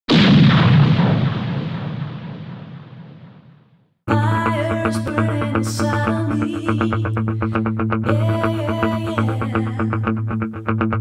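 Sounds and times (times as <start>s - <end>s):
loud booming electronic hit: 0.1s - 3.9s.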